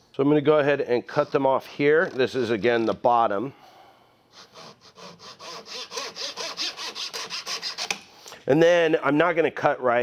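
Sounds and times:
hand saw cutting wood: 4.4 - 8.0.

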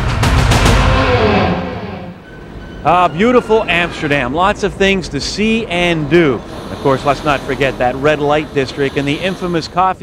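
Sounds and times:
theme music ending chord: 0.0 - 2.9
man speaking: 2.8 - 10.0.

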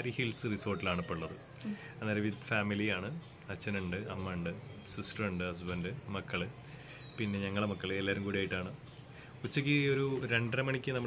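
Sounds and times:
man talking: 0.0 - 6.6, 7.2 - 8.8, 9.4 - 11.0
high-pitched insect chorus: 0.0 - 11.0.

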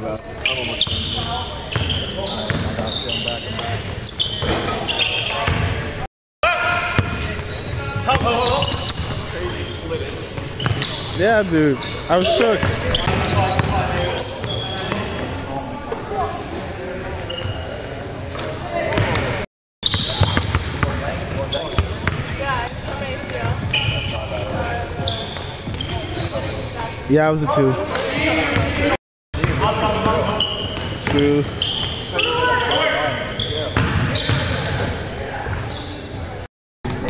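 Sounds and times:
sneakers squeaking on hardwood: 0.0 - 6.0, 6.6 - 16.2, 17.2 - 27.0, 27.7 - 36.4
players' voices: 0.0 - 37.0.

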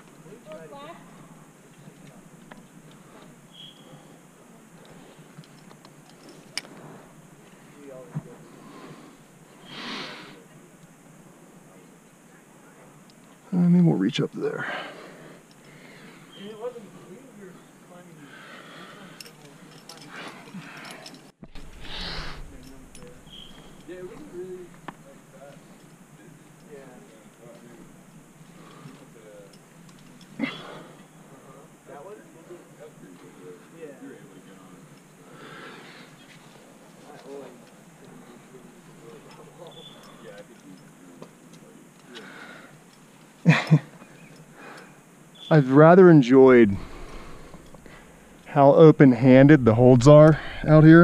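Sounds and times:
climbing gear clicking on rock: 4.8 - 6.8, 19.0 - 27.8, 28.4 - 31.2, 36.0 - 45.0
person breathing: 14.6 - 16.3, 17.6 - 19.4, 20.0 - 23.0, 35.2 - 36.2, 42.1 - 42.8, 46.7 - 48.4, 50.3 - 50.7
faint indistinct voices: 14.6 - 42.8
loud rush of breath: 18.2 - 19.2, 21.6 - 23.8, 35.2 - 36.2, 46.7 - 48.4
climbing gear clicks: 19.1 - 31.2.

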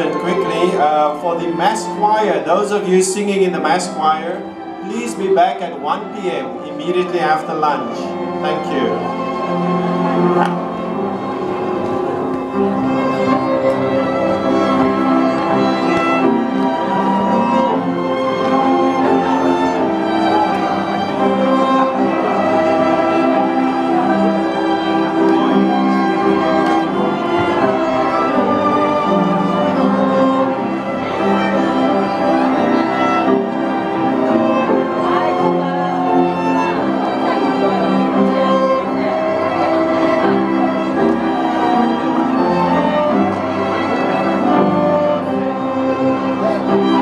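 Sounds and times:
string ensemble playing: 0.0 - 47.0.

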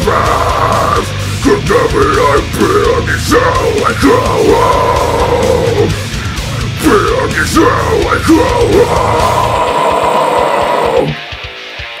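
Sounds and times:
harsh metal scream: 0.0 - 11.3
fast heavy metal drum beats: 0.0 - 12.0.

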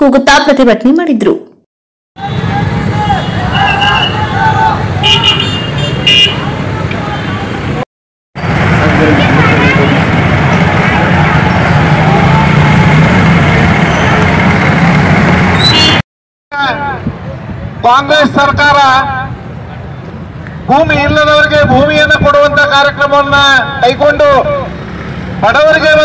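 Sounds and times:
street traffic: 0.0 - 26.0
vehicle horn toots: 2.2 - 4.3, 5.0 - 6.5, 15.6 - 16.0
large crowd of voices: 2.2 - 5.0, 6.4 - 7.8, 8.7 - 15.2
people shouting: 2.2 - 5.5, 10.8 - 13.0.

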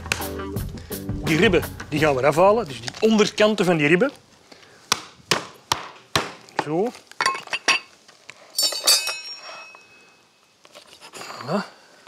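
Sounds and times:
metal utensil clinking and ringing: 8.6 - 10.3.

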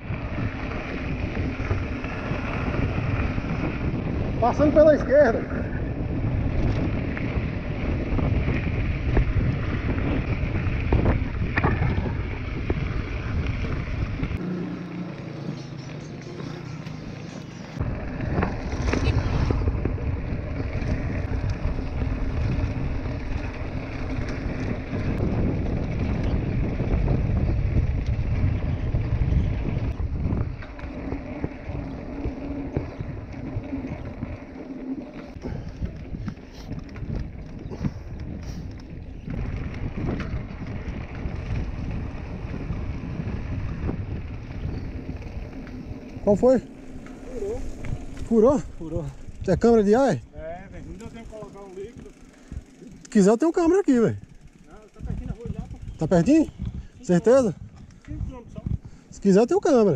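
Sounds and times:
wind rushing over microphone: 0.0 - 14.6, 16.3 - 59.9
bike rattling: 0.0 - 59.9
bike tyres rumbling on dirt: 0.0 - 59.9.

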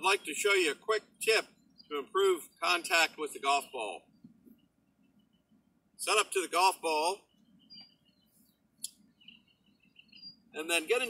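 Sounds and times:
bird chirps: 0.0 - 11.0.

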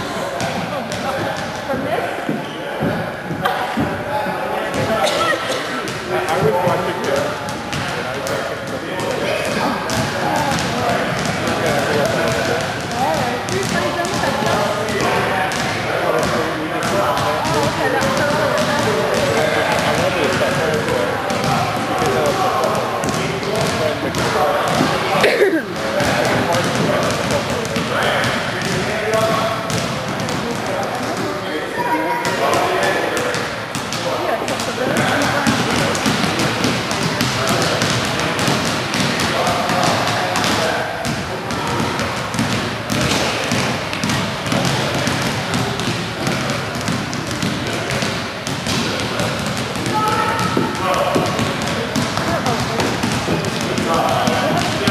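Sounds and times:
basketballs bouncing on hardwood floor: 0.0 - 4.0, 4.7 - 5.1, 5.9 - 31.4, 32.2 - 54.9.

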